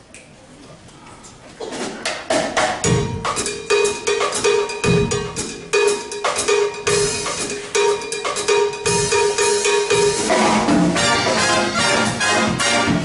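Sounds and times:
drum kit playing latin groove: 0:01.8 - 0:13.0
high knocking percussion: 0:02.3 - 0:13.0.

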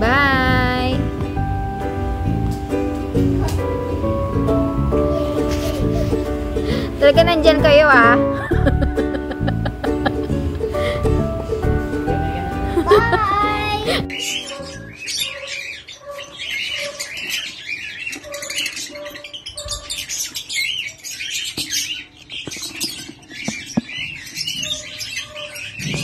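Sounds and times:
music: 0:00.0 - 0:15.2
lovebirds chirping and squawking: 0:00.3 - 0:26.0.

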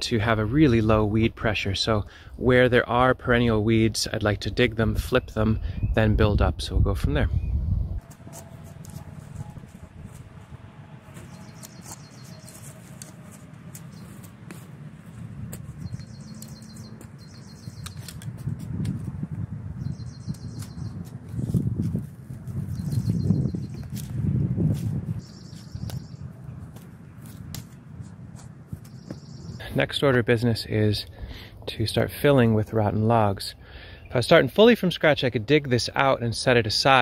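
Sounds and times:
shovel digging dry ground: 0:08.0 - 0:19.3, 0:20.2 - 0:23.1, 0:23.7 - 0:29.1
bird chirping: 0:11.1 - 0:14.3, 0:15.7 - 0:18.2, 0:19.8 - 0:21.2, 0:22.6 - 0:24.0, 0:25.2 - 0:26.3, 0:28.8 - 0:29.8.

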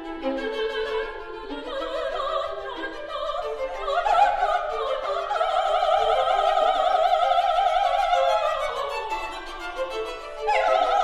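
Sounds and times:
solo violin: 0:00.0 - 0:11.0
soprano singing: 0:00.0 - 0:11.0.

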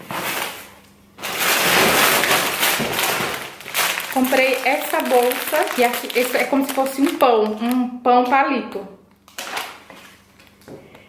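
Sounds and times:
plastic packaging crinkling: 0:00.0 - 0:07.9, 0:09.1 - 0:10.7.

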